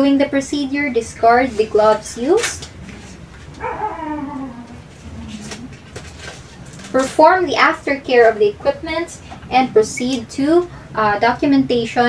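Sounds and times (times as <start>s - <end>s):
whining call falling in pitch: 3.6s - 4.9s.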